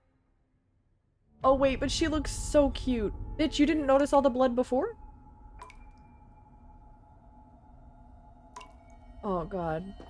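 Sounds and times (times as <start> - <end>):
faint low drone: 1.2 - 10.0
water drip: 3.8 - 7.0, 8.4 - 10.0.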